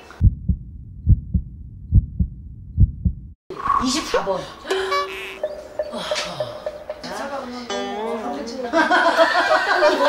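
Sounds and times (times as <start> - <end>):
low rumble: 0.1 - 4.2
heartbeat thuds: 0.2 - 3.4.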